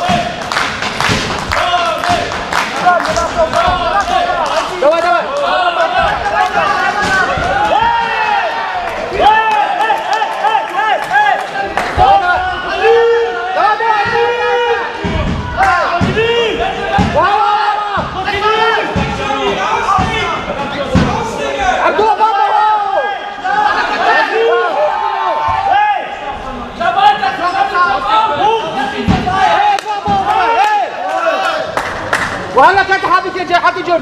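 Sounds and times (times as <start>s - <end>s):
spectators and coaches shouting: 0.0s - 0.4s, 1.5s - 31.8s
thuds: 15.0s - 16.3s.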